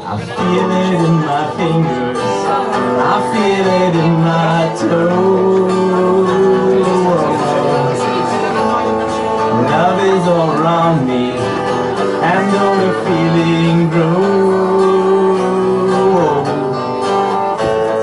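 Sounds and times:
man singing: 0.0s - 18.0s
strummed acoustic guitar: 0.0s - 18.0s.

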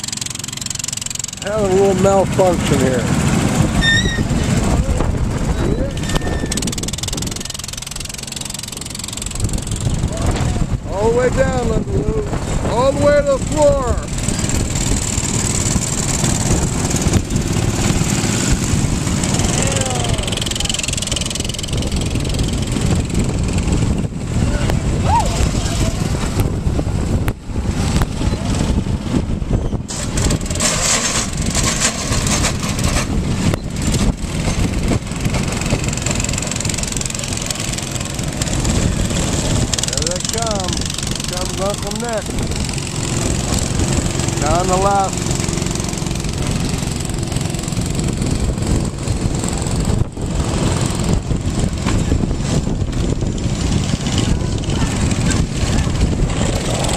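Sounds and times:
go-kart engines running: 0.0s - 56.9s
voices calling out: 19.3s - 21.0s.

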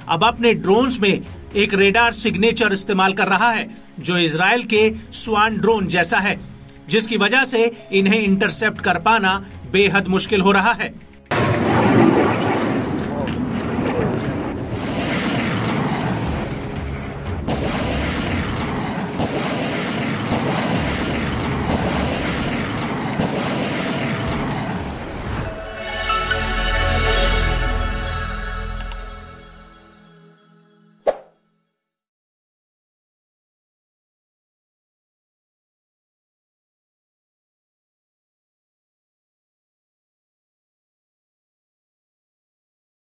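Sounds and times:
explosion boom and rumbling roar: 11.3s - 25.8s.

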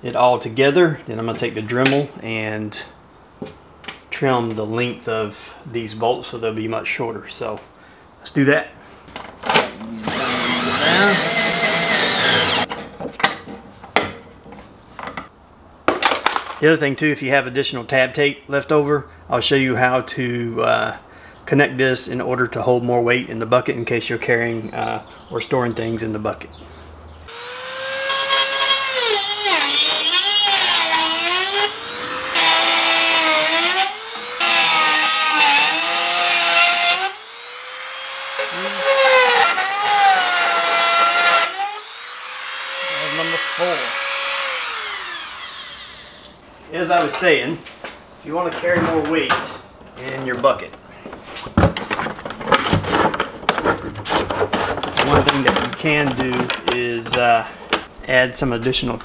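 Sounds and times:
rotary tool cutting metal: 9.9s - 12.7s, 27.3s - 46.4s
cordless screwdriver whining: 10.0s - 12.7s, 41.0s - 46.4s.

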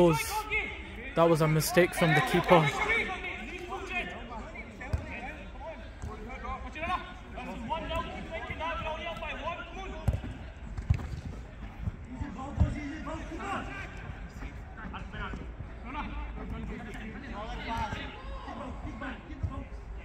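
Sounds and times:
players calling out: 0.0s - 0.5s, 1.2s - 4.2s.

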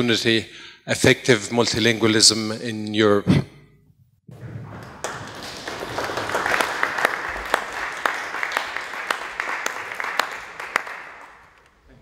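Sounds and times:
small audience applauding: 4.4s - 12.0s.

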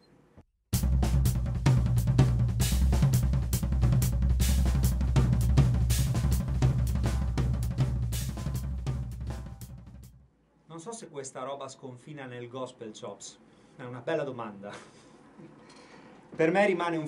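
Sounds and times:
bass drum: 0.8s - 10.2s
drum kit fill: 0.8s - 10.2s.

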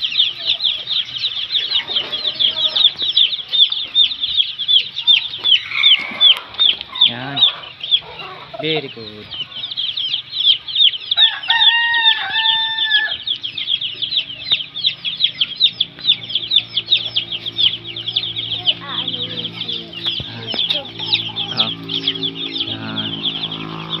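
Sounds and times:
chicks peeping: 0.0s - 24.0s
rooster crowing: 5.1s - 8.6s, 9.4s - 14.9s.

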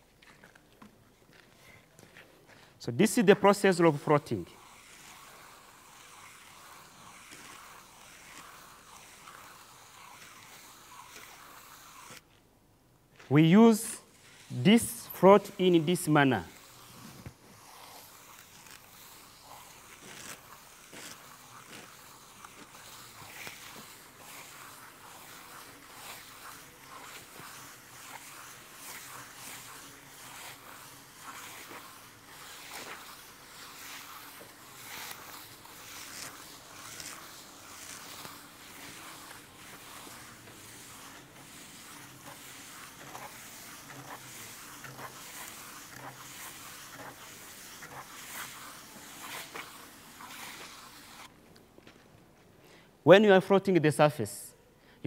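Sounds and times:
wooden float scraping plaster: 3.5s - 12.3s, 13.8s - 51.3s.

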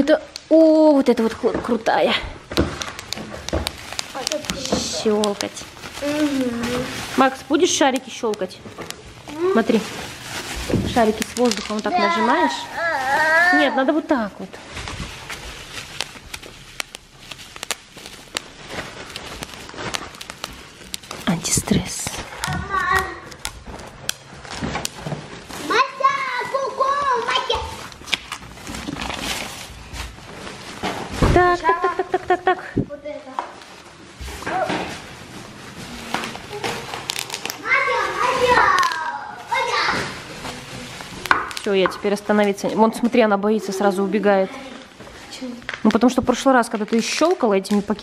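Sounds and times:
bubble wrap popping: 0.0s - 43.7s, 45.6s - 48.0s
plastic packaging crinkling: 0.0s - 48.0s
children's voices: 4.2s - 5.3s, 6.0s - 7.0s, 11.8s - 14.1s, 22.3s - 23.4s, 25.6s - 28.0s, 36.2s - 41.1s, 43.5s - 45.7s.

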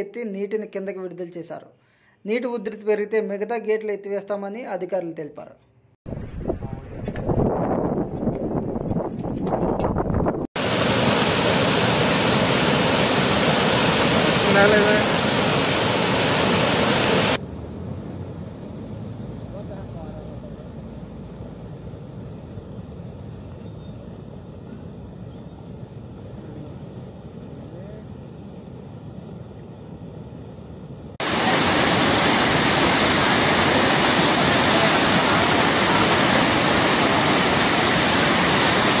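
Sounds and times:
floodwater rushing: 10.6s - 17.4s, 31.2s - 39.0s.

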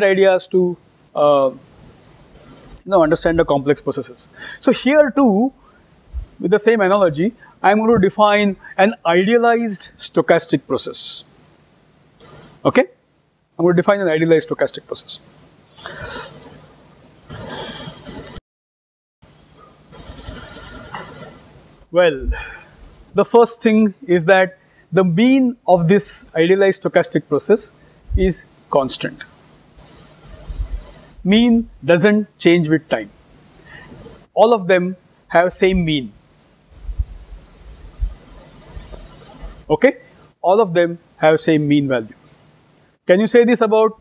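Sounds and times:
microphone hiss and room noise: 0.0s - 18.4s, 19.2s - 44.0s
soft low thuds: 36.7s - 38.4s.

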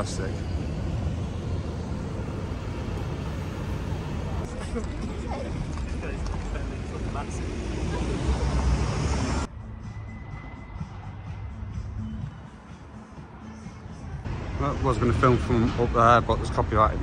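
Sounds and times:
low traffic rumble: 0.0s - 17.0s
vehicles passing: 0.0s - 17.0s.

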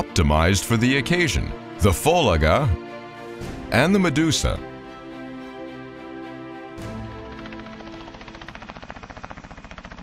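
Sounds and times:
helicopter rotor beating: 3.8s - 10.0s.

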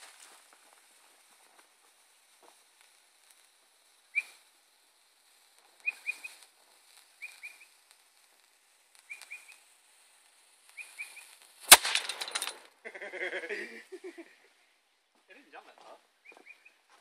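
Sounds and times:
rattle of clinks: 11.7s - 12.7s
bird chirping: 16.2s - 16.9s.

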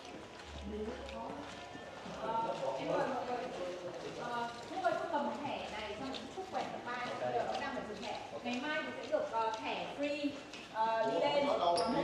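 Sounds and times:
footsteps on stone floor: 0.0s - 11.6s.

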